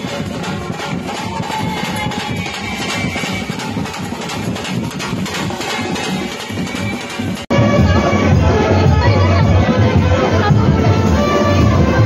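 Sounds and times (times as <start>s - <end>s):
drum beaten with sticks: 0.0s - 12.0s.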